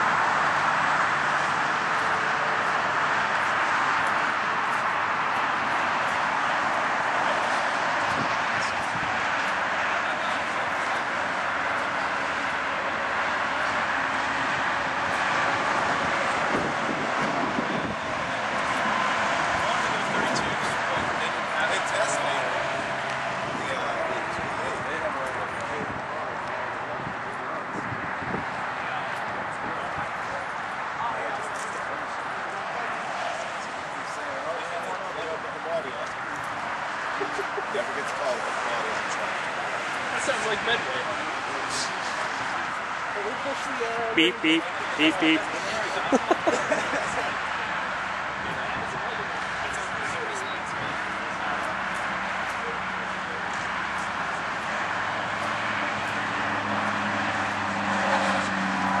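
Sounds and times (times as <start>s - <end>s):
background chatter: 0.0s - 59.0s
outdoor noise: 0.0s - 59.0s.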